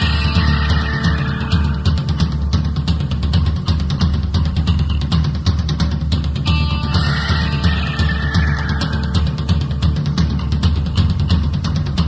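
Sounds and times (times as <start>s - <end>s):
drum kit playing rapid hits: 0.0s - 12.0s
heavy bass: 0.0s - 12.0s.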